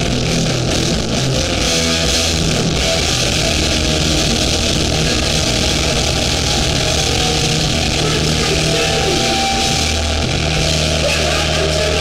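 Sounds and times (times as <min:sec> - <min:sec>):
punk band playing: 0:00.0 - 0:12.0.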